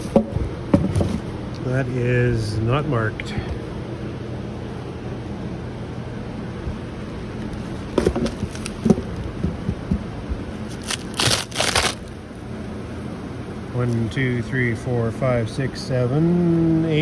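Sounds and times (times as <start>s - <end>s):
steady low hum: 0.0s - 17.0s
scraping and crinkling: 7.6s - 9.1s, 10.6s - 12.1s.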